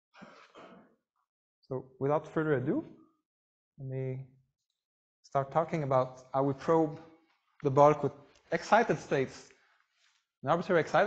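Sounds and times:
person clearing throat: 0.2s - 0.8s.

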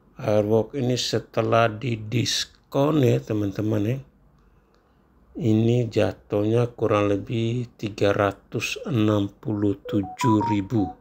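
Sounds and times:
person speaking: 8.6s - 11.0s.

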